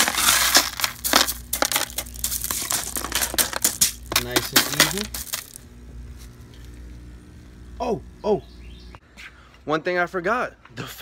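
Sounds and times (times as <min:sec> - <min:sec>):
pebbles clattering in plastic tub: 0:00.0 - 0:05.6.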